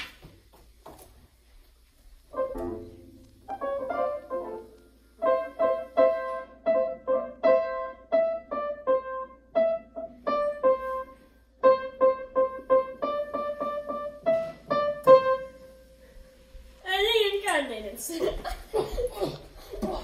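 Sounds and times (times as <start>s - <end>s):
upright piano melody: 2.2s - 16.8s.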